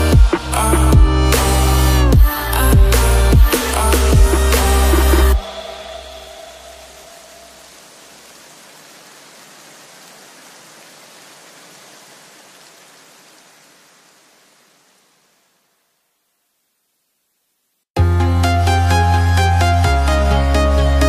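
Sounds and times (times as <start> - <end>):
electronic background music: 0.0 - 7.7, 18.0 - 21.0
hiss: 3.0 - 12.8.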